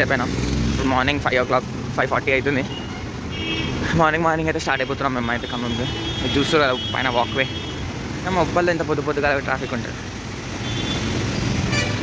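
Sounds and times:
low rumble of road traffic: 0:00.0 - 0:12.0
person speaking: 0:03.8 - 0:10.2.

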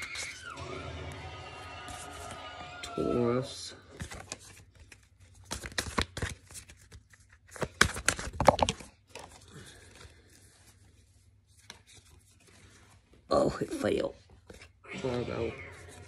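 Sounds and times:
cards rustling and snapping: 0:03.8 - 0:12.9.

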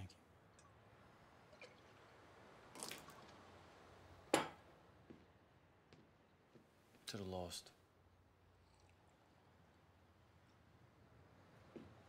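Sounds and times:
liquid pouring into a glass: 0:01.4 - 0:03.4, 0:08.6 - 0:09.5.

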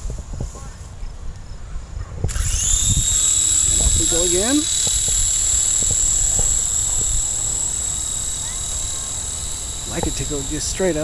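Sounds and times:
wind rumbling on microphone: 0:00.0 - 0:08.9
helicopter electric motors whining: 0:02.3 - 0:11.0.

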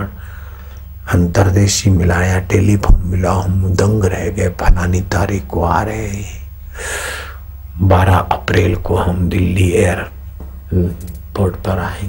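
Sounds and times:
sharp intake of breath: 0:00.1 - 0:01.0, 0:06.7 - 0:07.5
man speaking: 0:01.1 - 0:06.5, 0:07.8 - 0:12.0.

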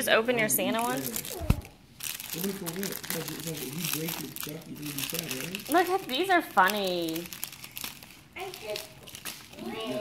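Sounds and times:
candy wrapper crinkling: 0:00.7 - 0:10.0.

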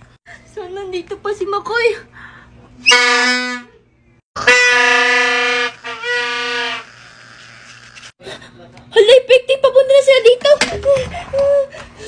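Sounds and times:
buzzy party horn blasts: 0:02.8 - 0:03.7, 0:04.4 - 0:07.8.

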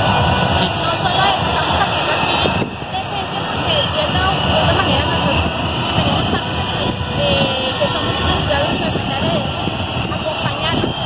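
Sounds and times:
low rumble: 0:00.0 - 0:11.0
woman talking: 0:00.6 - 0:11.0.

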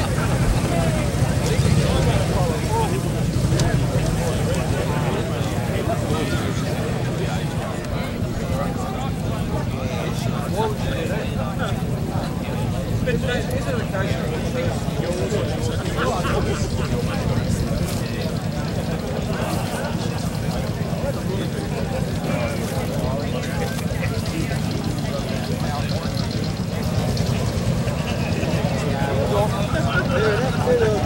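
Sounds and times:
people chattering: 0:00.0 - 0:31.0.

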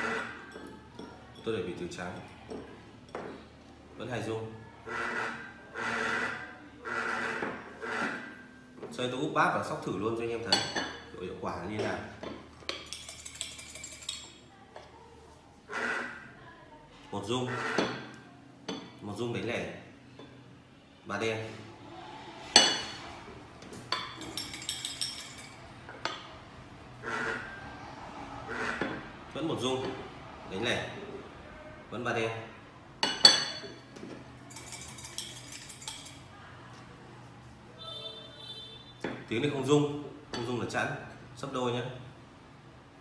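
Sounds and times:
vibration alerter buzzing in bowl: 0:04.8 - 0:08.3, 0:15.7 - 0:16.3, 0:27.0 - 0:27.7
tokens rattling in porcelain bowl: 0:12.8 - 0:14.4, 0:24.2 - 0:25.6, 0:34.4 - 0:36.3.

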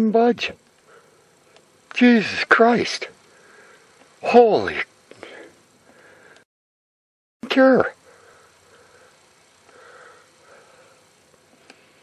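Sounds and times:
soft breathing: 0:00.8 - 0:01.6, 0:03.2 - 0:04.0, 0:05.1 - 0:06.5, 0:08.0 - 0:12.0.

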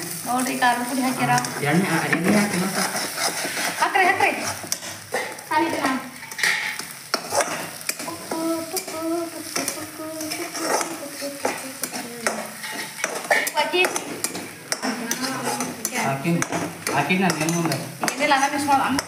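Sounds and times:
oil sizzling: 0:00.0 - 0:19.0
metal spatula scraping a pan: 0:00.9 - 0:19.0.

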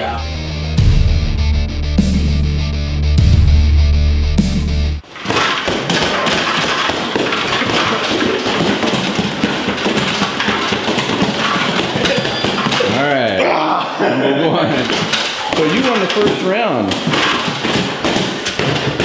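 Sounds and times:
fists striking padded targets: 0:05.1 - 0:13.2, 0:14.8 - 0:19.0.

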